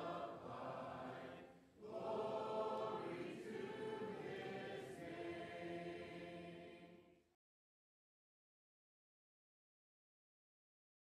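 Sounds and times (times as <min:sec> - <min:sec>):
choir singing held chords: 0:00.0 - 0:07.1.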